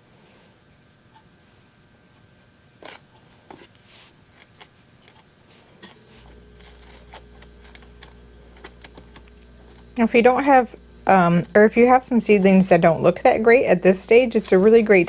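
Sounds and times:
low steady hum: 0:00.0 - 0:15.0
fingers working potting soil: 0:02.8 - 0:12.8.

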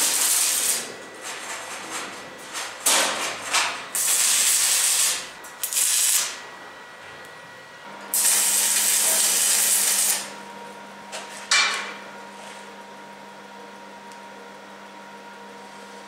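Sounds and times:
welding arc crackle: 0:00.0 - 0:06.4, 0:08.1 - 0:10.4.

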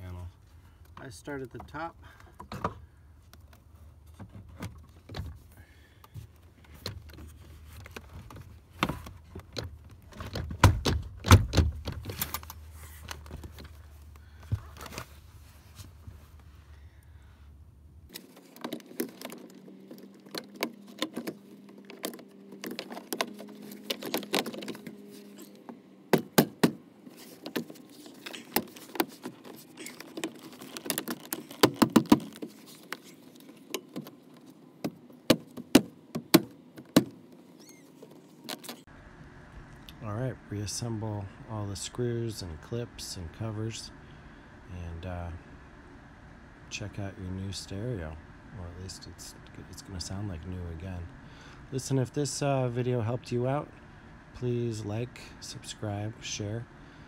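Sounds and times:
low hum: 0:38.8 - 0:57.0.

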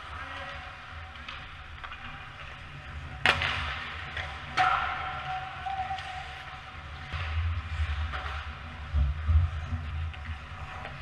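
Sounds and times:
sharp cracks of hockey play: 0:00.0 - 0:08.9
low steady rink hum: 0:00.0 - 0:11.0.

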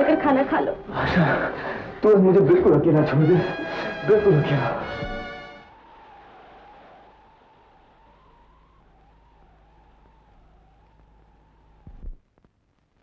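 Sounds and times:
film soundtrack hum and hiss: 0:00.0 - 0:13.0.

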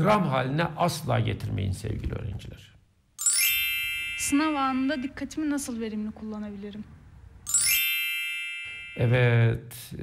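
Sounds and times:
bright chime: 0:03.2 - 0:05.1, 0:07.5 - 0:09.5.

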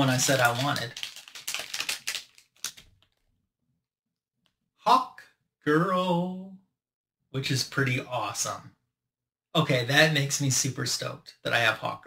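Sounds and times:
wrapper crinkling: 0:00.0 - 0:03.2.

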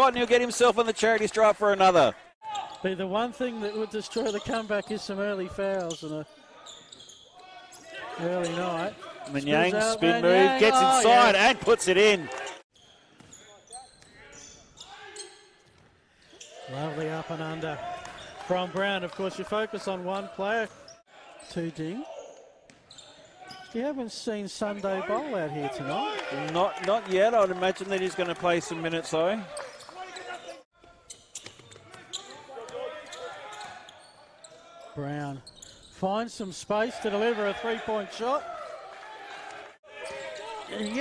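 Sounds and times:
sneaker squeaks: 0:03.6 - 0:09.6, 0:12.7 - 0:16.8, 0:20.7 - 0:23.8, 0:29.5 - 0:36.0, 0:40.0 - 0:41.0
players calling out: 0:07.6 - 0:12.6.

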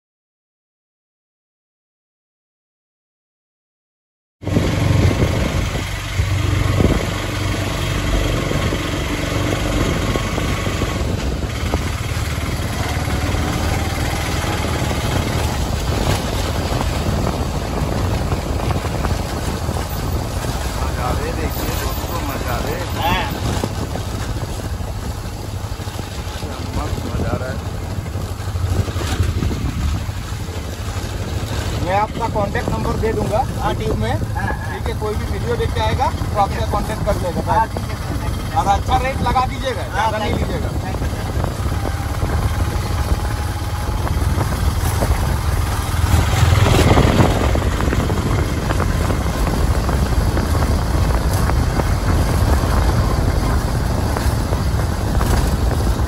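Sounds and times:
auto-rickshaw engine drone: 0:04.4 - 0:56.0.

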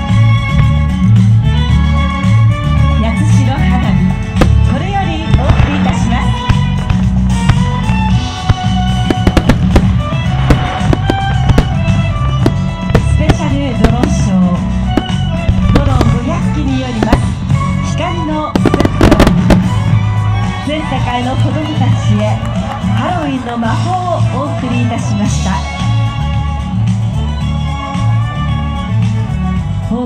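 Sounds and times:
loud music: 0:00.0 - 0:30.0
voice: 0:03.0 - 0:04.0, 0:04.7 - 0:06.4, 0:13.0 - 0:14.6, 0:15.7 - 0:18.8, 0:20.7 - 0:22.4, 0:23.0 - 0:25.7
firework shells bursting: 0:04.4 - 0:17.6, 0:18.5 - 0:20.0.

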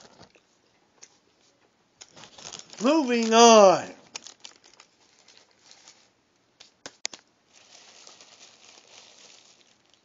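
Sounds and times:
paper wrapping crinkling: 0:02.0 - 0:10.0.

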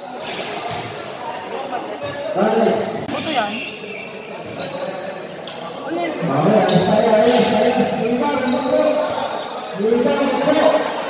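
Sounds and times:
shoe squeaks: 0:00.0 - 0:10.9
voices echoing: 0:00.0 - 0:11.0
basketball bouncing on court: 0:00.6 - 0:01.1.

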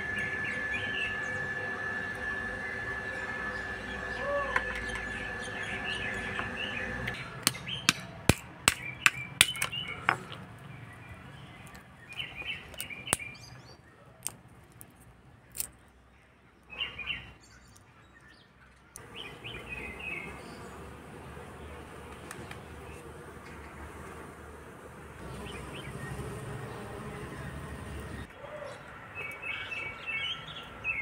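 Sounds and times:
birds chirping: 0:00.0 - 0:14.1, 0:15.5 - 0:31.0
walnut shells cracking: 0:07.4 - 0:10.4, 0:14.2 - 0:15.7.

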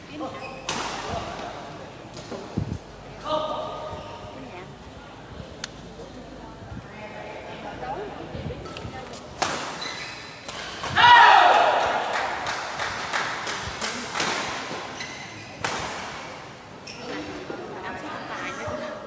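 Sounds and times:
racket hitting shuttlecock: 0:09.4 - 0:09.8, 0:13.4 - 0:14.9, 0:15.6 - 0:16.2.

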